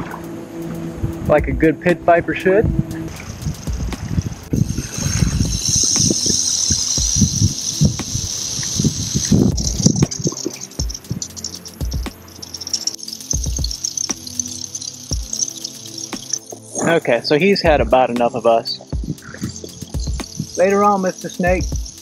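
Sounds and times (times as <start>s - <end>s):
background music: 0.0s - 22.0s
rattlesnake rattling: 2.7s - 18.2s, 18.8s - 22.0s.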